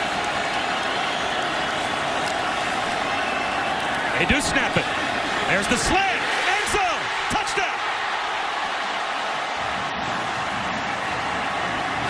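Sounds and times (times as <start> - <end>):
stadium crowd cheering: 0.0 - 12.0.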